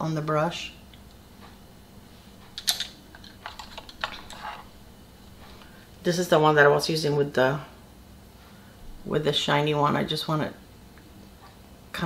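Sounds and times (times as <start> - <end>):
makeup brushes clicking: 2.6 - 4.6.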